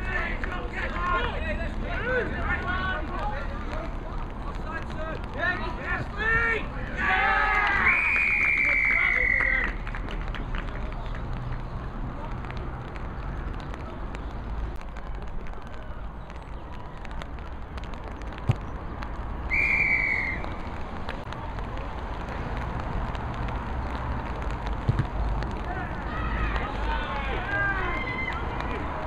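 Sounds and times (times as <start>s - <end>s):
players calling: 0.0s - 17.2s, 22.0s - 29.0s
low outdoor rumble: 0.0s - 29.0s
referee's whistle blast: 19.5s - 20.5s.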